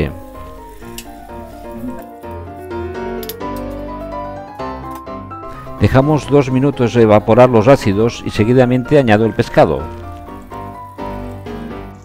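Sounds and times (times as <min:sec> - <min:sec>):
instrumental music with held notes: 0:00.0 - 0:12.0.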